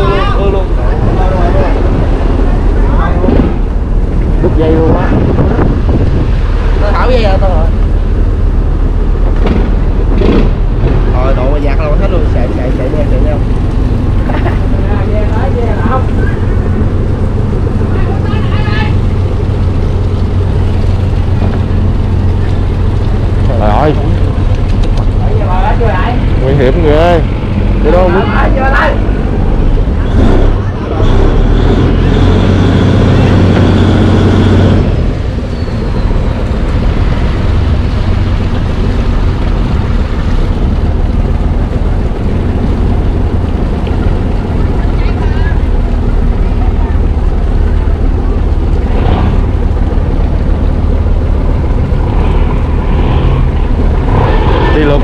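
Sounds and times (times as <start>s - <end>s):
boat engine droning: 0.0s - 55.0s.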